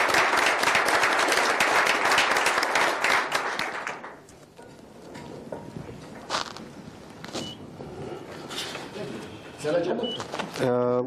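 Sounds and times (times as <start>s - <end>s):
shuffling and rustling: 5.7s - 7.6s.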